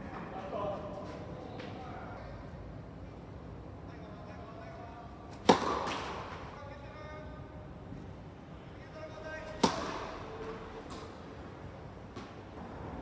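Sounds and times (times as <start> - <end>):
tennis ball struck by racket: 5.3 - 6.4, 9.5 - 10.3.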